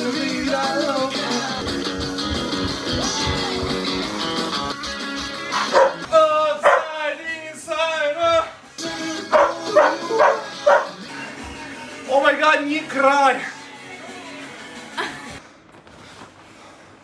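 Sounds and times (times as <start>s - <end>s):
background music: 0.0s - 15.4s
dog barking: 5.6s - 6.0s, 6.6s - 7.0s, 9.3s - 11.0s.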